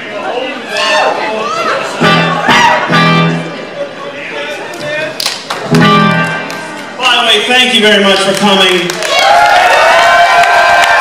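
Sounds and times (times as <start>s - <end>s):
amplified electric guitar notes: 2.0s - 3.6s, 5.6s - 6.7s.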